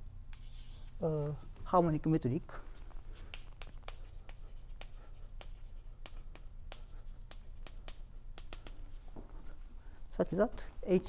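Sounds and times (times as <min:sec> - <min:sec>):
low room hum: 0:00.0 - 0:11.0
chalk tapping on blackboard: 0:00.3 - 0:00.9, 0:03.1 - 0:09.0.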